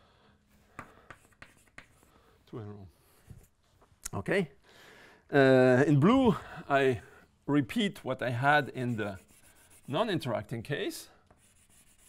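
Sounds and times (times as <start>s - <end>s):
chalk tapping on chalkboard: 0.7s - 2.1s, 8.8s - 9.9s, 11.3s - 12.0s
chalk scraping on chalkboard: 0.8s - 2.1s, 8.4s - 10.3s, 11.4s - 12.0s.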